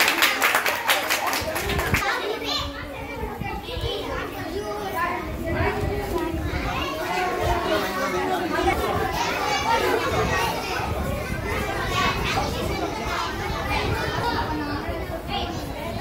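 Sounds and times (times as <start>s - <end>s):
children talking and calling out: 0.0s - 16.0s.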